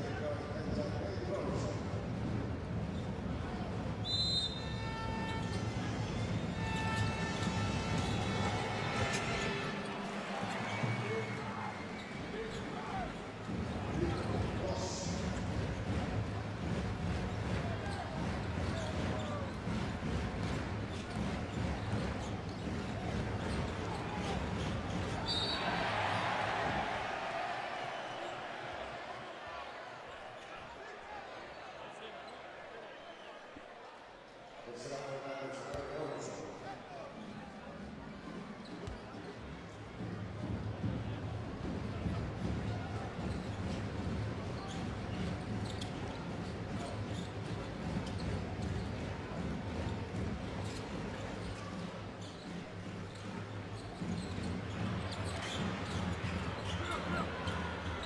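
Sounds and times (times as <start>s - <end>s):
crowd noise: 0.0s - 58.0s
basketball bouncing on court: 12.0s - 27.2s, 38.3s - 58.0s.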